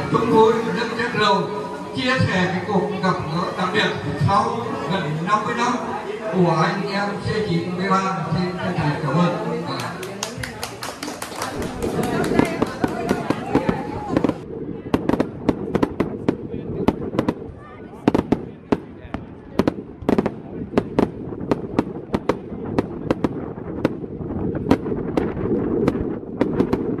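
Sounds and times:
voices: 0.0 - 15.5
hand clapping: 9.8 - 13.6
fireworks bangs and crackles: 11.4 - 27.0.

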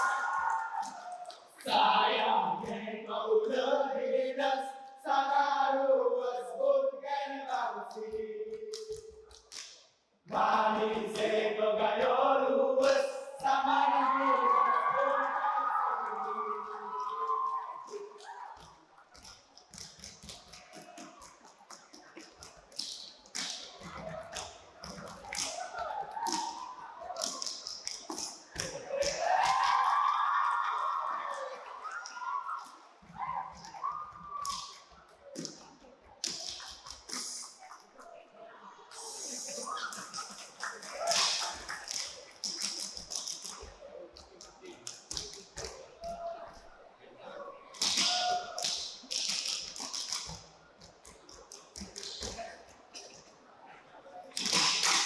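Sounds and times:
chanted vocal line: 1.6 - 8.8, 10.3 - 17.6
hands clapping and body slapping: 8.5 - 9.9, 16.9 - 37.9, 39.0 - 46.2, 47.8 - 53.2, 54.3 - 55.0.

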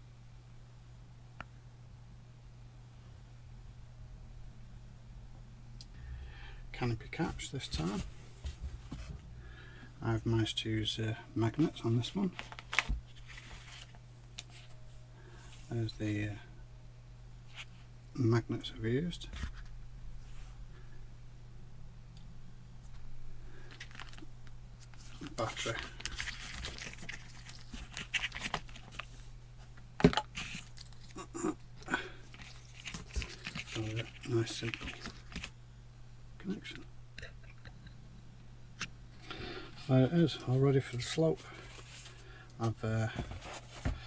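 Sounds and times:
steady low hum: 0.0 - 44.0
battery and wires clicking and rustling: 23.7 - 29.1, 29.7 - 31.2, 32.2 - 35.6.

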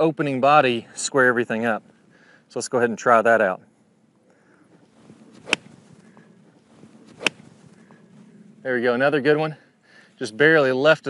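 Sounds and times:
golf club striking ball: 5.1 - 6.2, 6.8 - 7.9.

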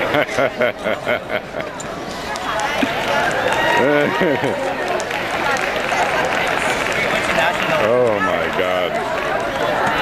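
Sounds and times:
crowd chattering and shouting: 0.0 - 10.0.

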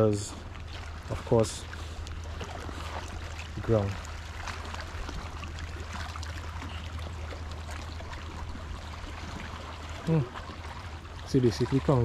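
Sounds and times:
water lapping among rocks: 0.0 - 12.0.

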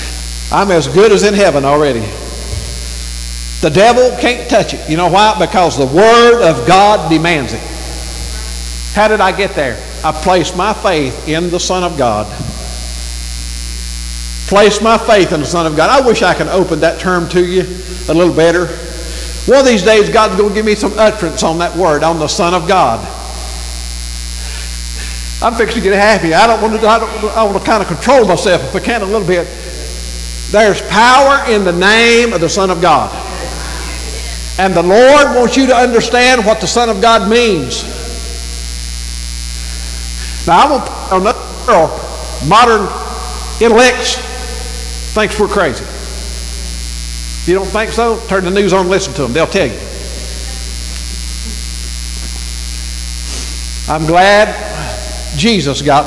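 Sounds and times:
electrical mains hum: 0.0 - 56.0.

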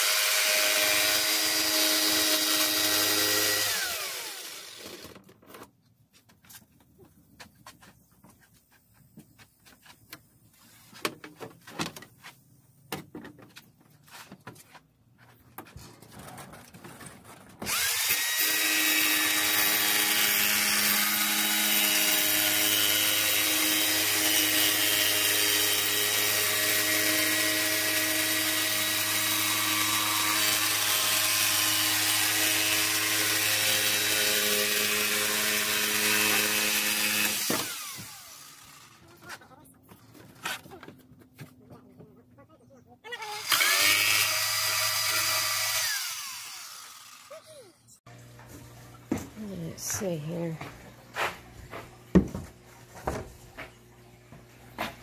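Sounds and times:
jigsaw motor whining: 0.0 - 5.2, 17.6 - 39.0, 43.1 - 47.7.

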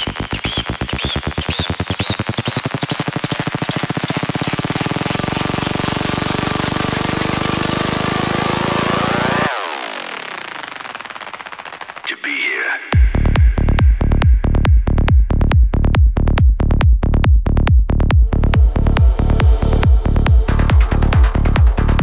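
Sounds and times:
electronic build-up with rising sweep: 0.0 - 12.1.

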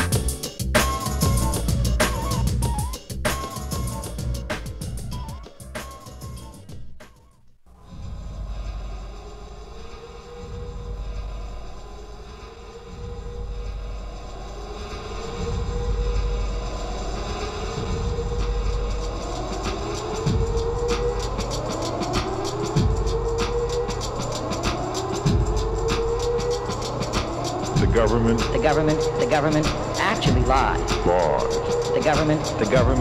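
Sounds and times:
low rumbling bass drone: 0.0 - 5.3, 7.8 - 33.0
rising synth swoop: 7.8 - 33.0
downward-swooping bass hits: 7.9 - 33.0.

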